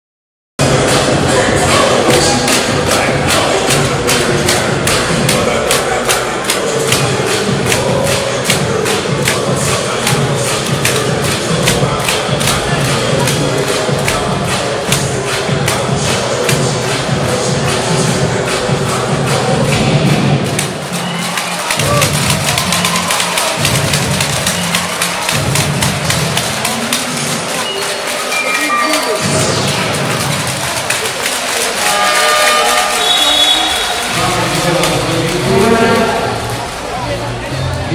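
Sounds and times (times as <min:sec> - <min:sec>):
crowd noise: 0:00.6 - 0:37.9
dance music over sound system: 0:00.6 - 0:37.9.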